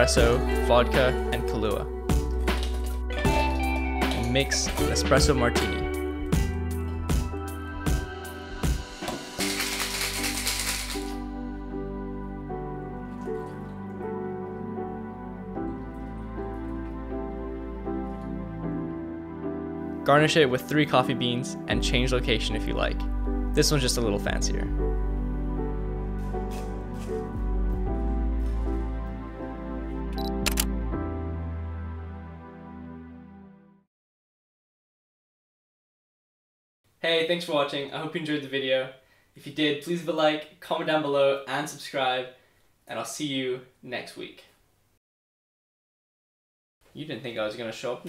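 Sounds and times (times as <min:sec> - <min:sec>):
background music: 0:00.0 - 0:33.9
ice rattling in cocktail shaker: 0:09.4 - 0:11.2
camera shutter double click: 0:30.2 - 0:30.7.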